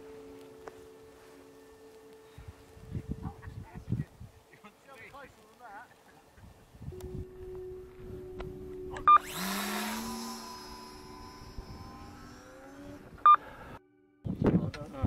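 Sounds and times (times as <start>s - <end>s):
electric motor whine: 7.0s - 13.8s
short beep: 8.9s - 9.3s.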